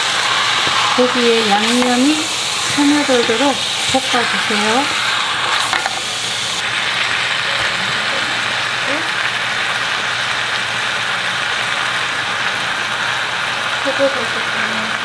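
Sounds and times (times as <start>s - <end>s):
chicken sizzling in a pot: 0.0s - 15.0s.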